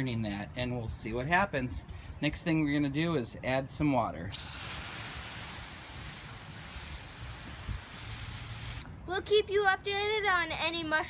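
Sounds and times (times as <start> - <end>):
hose nozzle spraying water: 4.3 - 8.8.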